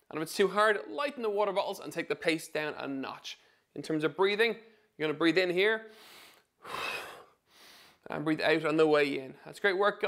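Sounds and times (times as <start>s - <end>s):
man inhaling through mouth: 5.9s - 8.0s.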